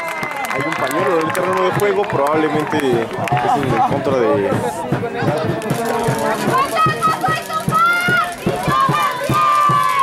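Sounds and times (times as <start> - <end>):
crowd shouting and chanting: 0.0 - 10.0.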